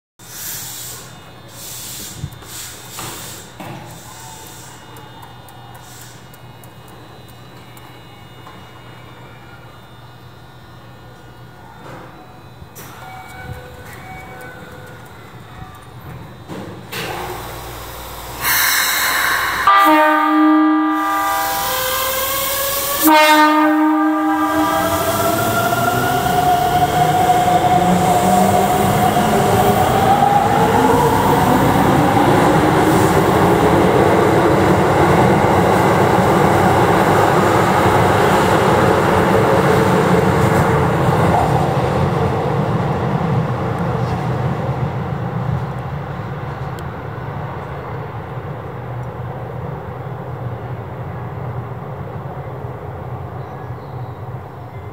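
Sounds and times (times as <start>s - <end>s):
short hiss: 0.2s - 4.8s, 17.2s - 19.7s
faint high whines: 0.2s - 39.2s
electric train humming: 0.2s - 54.9s
faint steady tones: 0.8s - 23.2s.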